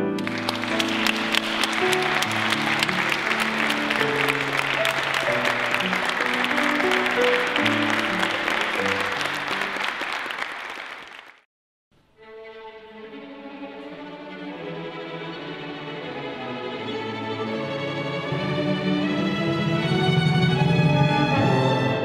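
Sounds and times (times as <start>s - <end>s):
slow piano music: 0.0s - 10.1s
people applauding: 0.0s - 11.5s.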